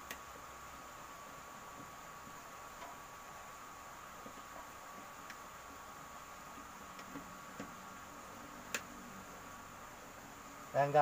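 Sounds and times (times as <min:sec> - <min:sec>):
faint hum and hiss: 0:00.0 - 0:11.0
clicks and taps handling wires: 0:07.0 - 0:07.8.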